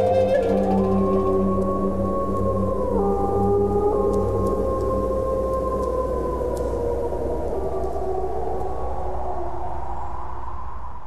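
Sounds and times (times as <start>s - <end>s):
low steady drone: 0.0s - 9.7s
wolves howling: 0.0s - 10.1s.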